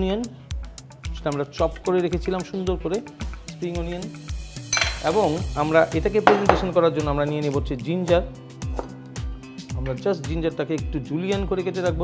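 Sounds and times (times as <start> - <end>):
background music with beat: 0.0 - 12.0
dishes clattering on steel counter: 4.7 - 5.0, 6.3 - 6.7.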